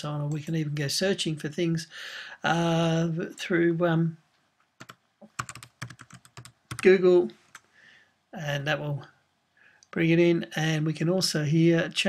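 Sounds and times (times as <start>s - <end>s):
typing on computer keyboard: 4.8s - 6.9s.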